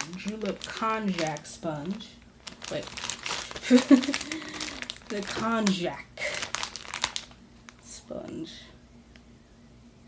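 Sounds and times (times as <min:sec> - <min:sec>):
plastic bag crinkling: 0:00.0 - 0:08.0.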